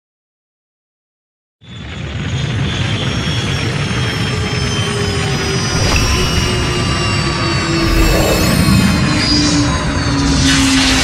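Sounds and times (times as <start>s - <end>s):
deep spacecraft engine rumble: 5.7s - 9.6s.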